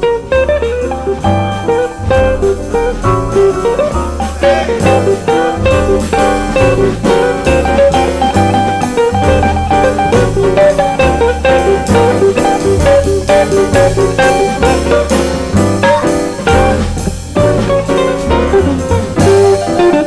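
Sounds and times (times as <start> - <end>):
drum kit: 0.0 - 20.0
jazz guitar lead: 0.0 - 20.0
walking upright bass: 0.0 - 20.0.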